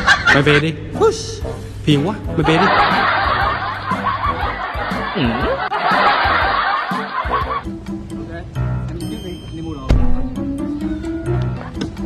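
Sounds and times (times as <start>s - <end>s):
laugh track: 0.0s - 8.2s, 10.8s - 12.0s
music: 0.0s - 12.0s.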